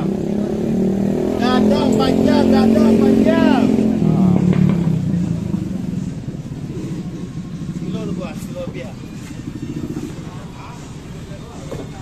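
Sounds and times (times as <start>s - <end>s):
motorcycle engine running: 0.0s - 12.0s
people talking: 1.3s - 5.6s, 7.7s - 12.0s.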